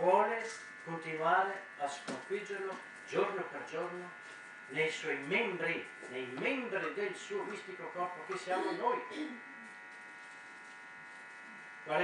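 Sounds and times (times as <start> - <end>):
man talking: 0.0 - 9.3
electrical buzz: 0.0 - 12.0.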